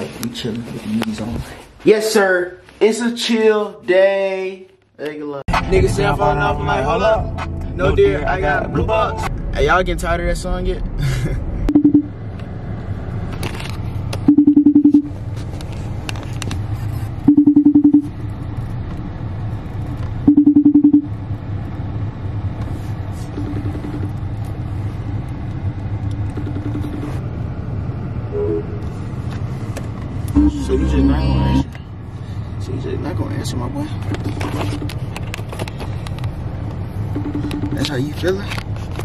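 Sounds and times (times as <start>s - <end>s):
phone ringing tone: 11.7s - 12.1s, 14.3s - 15.1s, 17.3s - 18.1s, 20.3s - 21.1s, 37.1s - 37.8s.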